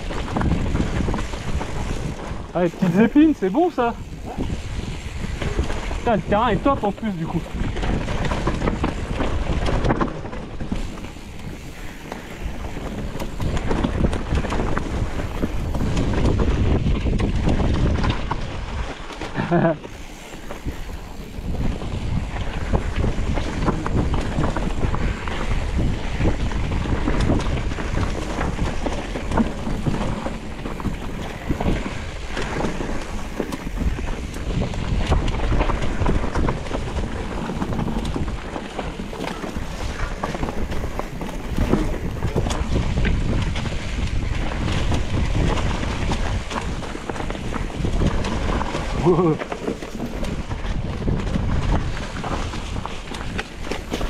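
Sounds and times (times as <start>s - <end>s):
bike knocks and rattles: 0.0s - 54.0s
wind rushing over microphone: 0.0s - 54.0s.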